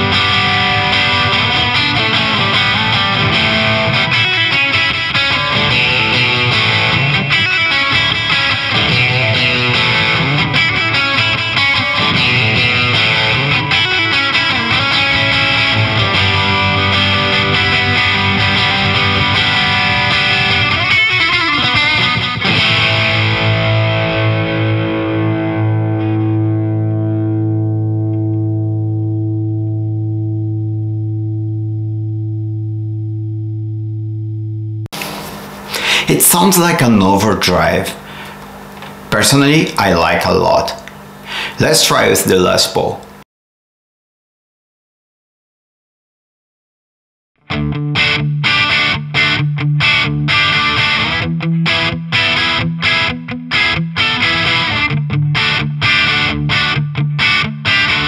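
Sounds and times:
distorted electric guitar riff: 0:00.0 - 0:43.2, 0:47.4 - 0:58.0.

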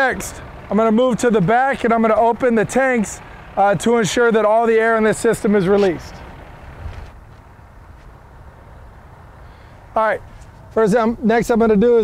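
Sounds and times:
outdoor background noise: 0:00.0 - 0:12.0
truck engine idling: 0:00.0 - 0:12.0.

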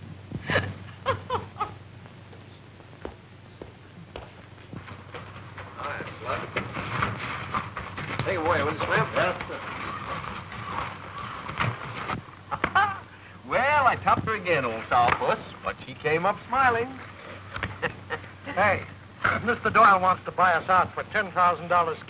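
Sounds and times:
film soundtrack hum: 0:00.0 - 0:22.0
indistinct voices talking: 0:04.9 - 0:22.0.

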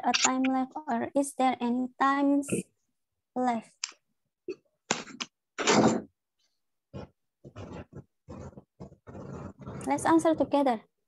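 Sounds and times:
muffled garbled voices over video call: 0:00.0 - 0:00.6.

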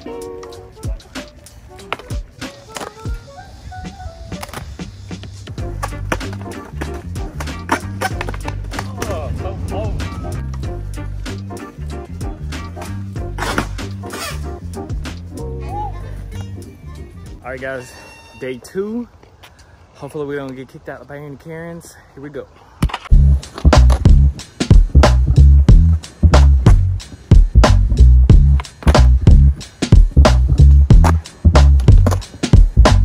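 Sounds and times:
skateboard wheels rolling: 0:00.0 - 0:16.8, 0:28.4 - 0:33.0
skateboard deck clacking: 0:00.1 - 0:03.2, 0:04.3 - 0:09.2, 0:28.5 - 0:29.2, 0:30.9 - 0:33.0
music with heavy bass line: 0:08.6 - 0:16.3, 0:23.1 - 0:33.0.

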